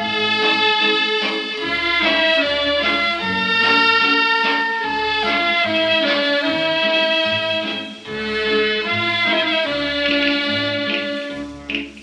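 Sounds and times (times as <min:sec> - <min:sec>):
old record popular song: 0:00.0 - 0:12.0.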